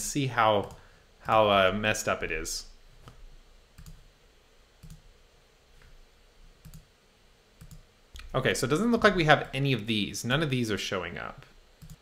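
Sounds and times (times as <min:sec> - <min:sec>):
low room hiss: 0:00.0 - 0:12.0.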